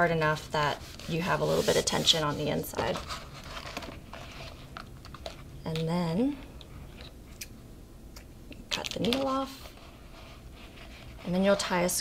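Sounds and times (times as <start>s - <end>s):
thread and paper rustling: 0.4s - 6.0s.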